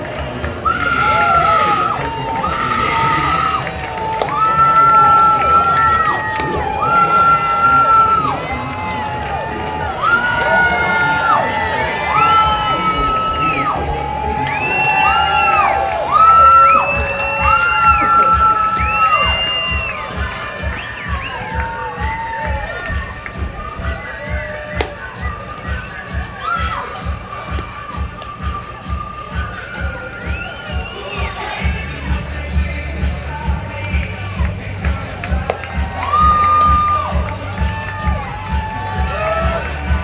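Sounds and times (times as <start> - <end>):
ballpark music with held notes: 0.0 - 40.0
crowd noise and cheering: 0.0 - 40.0.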